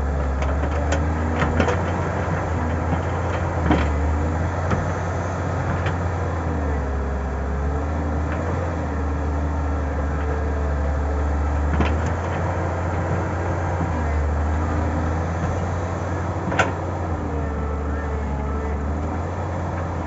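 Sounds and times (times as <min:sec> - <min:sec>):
excavator diesel engine running: 0:00.0 - 0:20.0.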